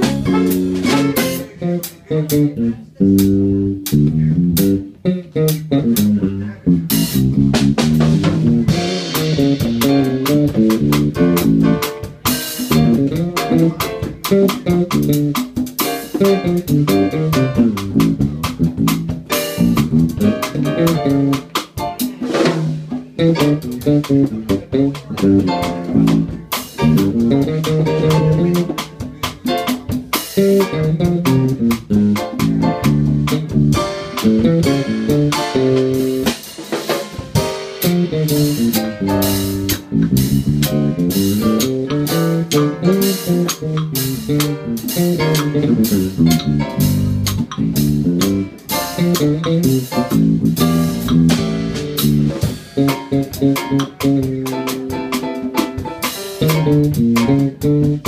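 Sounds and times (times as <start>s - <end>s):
drum kit: 0.0s - 58.0s
electric bass: 0.0s - 58.0s.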